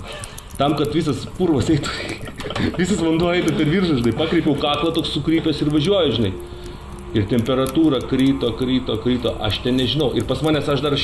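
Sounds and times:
voices: 0.6s - 11.0s
music: 1.7s - 11.0s.

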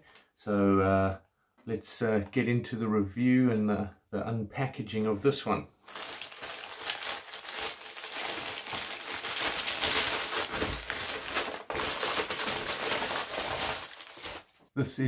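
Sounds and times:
plastic mailer crinkling: 5.8s - 14.6s.

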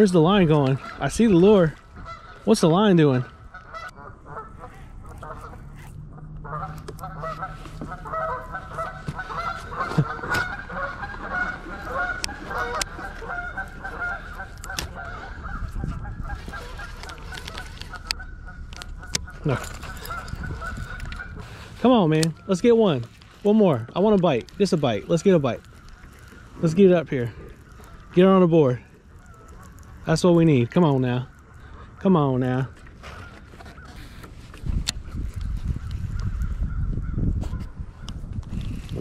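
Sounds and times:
geese honking: 0.0s - 38.2s.

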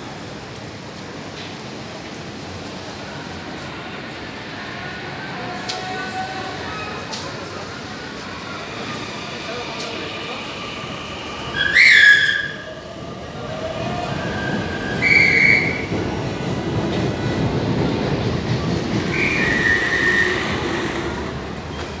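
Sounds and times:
train rumbling through station: 0.0s - 22.0s.

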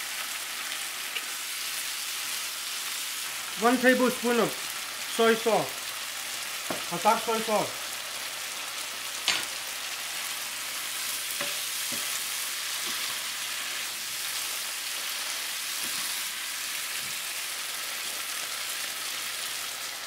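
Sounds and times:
food sizzling in a skillet: 0.0s - 20.0s.

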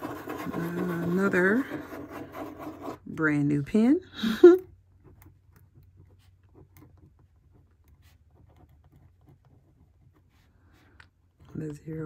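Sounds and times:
pen scratching on paper: 0.0s - 3.8s, 4.9s - 11.6s.

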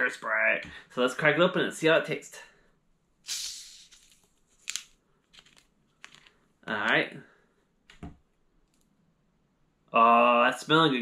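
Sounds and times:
soda bottle gas hiss: 3.3s - 4.1s.

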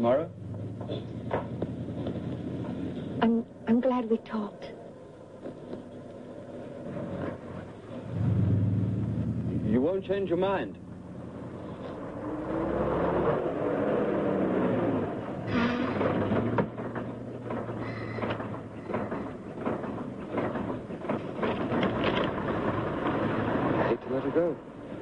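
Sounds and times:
car engine drawing away: 0.0s - 3.7s, 4.9s - 25.0s
street traffic: 0.0s - 25.0s
knocks and clatters: 0.4s - 3.2s, 15.3s - 25.0s.

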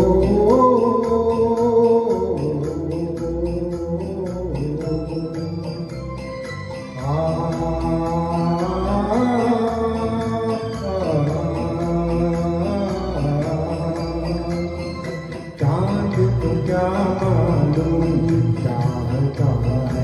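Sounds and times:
karaoke backing track: 0.0s - 20.0s
man singing into microphone: 0.0s - 20.0s.

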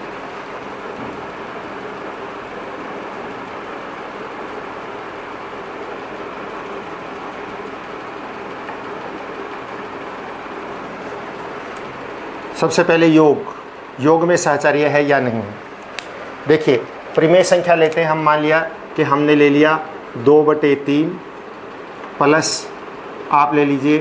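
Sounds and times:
faint low machine hum: 0.0s - 24.0s.

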